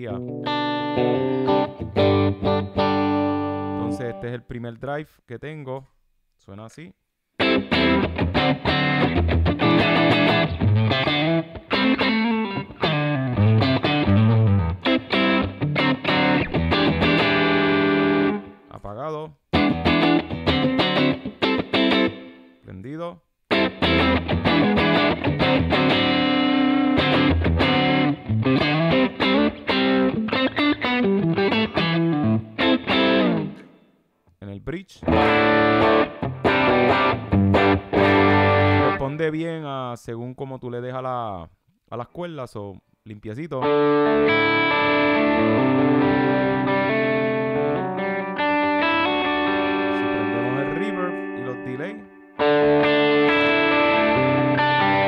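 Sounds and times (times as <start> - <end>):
distorted electric guitar: 0.0 - 4.2, 7.4 - 18.7, 19.5 - 22.5, 23.5 - 33.9, 35.0 - 39.0, 43.6 - 55.0.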